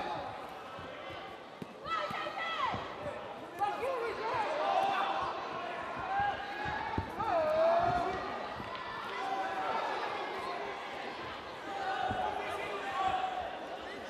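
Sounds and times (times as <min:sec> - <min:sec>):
people shouting: 0:03.5 - 0:14.0.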